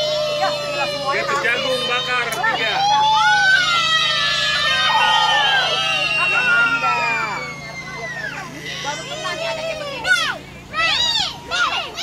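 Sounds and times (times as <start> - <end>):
children calling out and shouting: 0.0 - 12.0.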